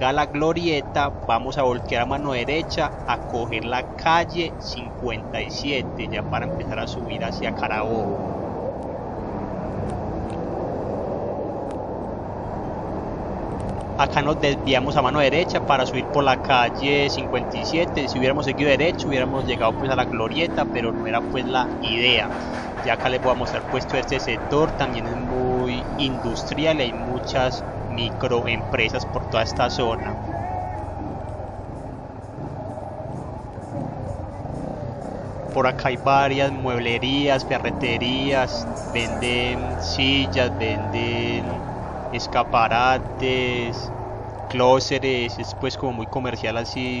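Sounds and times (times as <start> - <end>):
motorcycle engine and road noise: 0.0 - 47.0
motorcycle engine running: 25.8 - 42.1.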